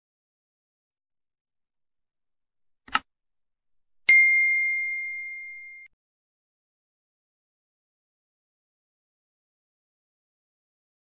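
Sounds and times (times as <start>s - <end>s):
notification bell ding: 4.1s - 5.9s.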